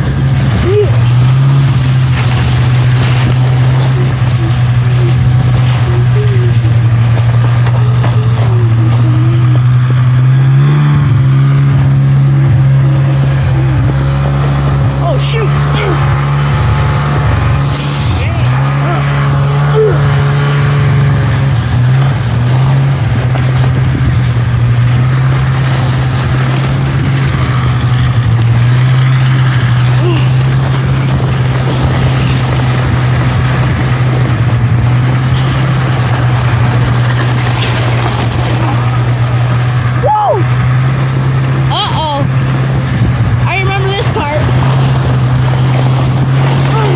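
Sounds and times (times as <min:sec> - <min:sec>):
snowmobile engine running: 0:00.0 - 0:46.9
toboggan rushing over snow: 0:00.0 - 0:46.9.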